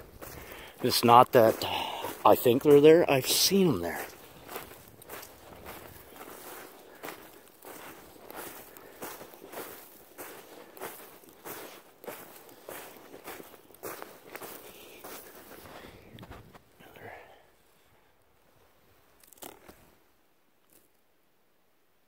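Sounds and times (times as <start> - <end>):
footsteps crunching through snow: 0.0 - 16.7.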